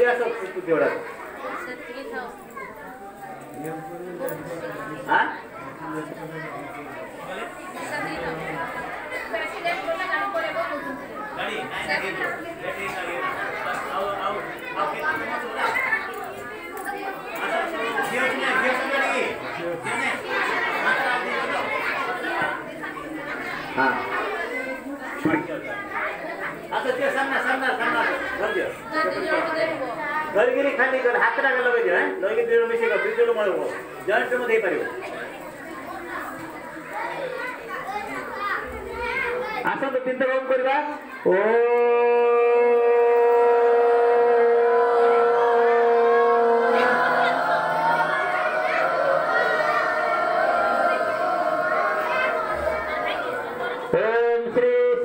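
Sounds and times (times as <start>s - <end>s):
people chattering: 0.0s - 55.0s.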